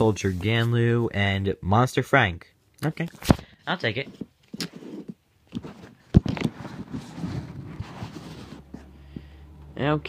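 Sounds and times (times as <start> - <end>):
cards rustling: 3.1 - 8.9.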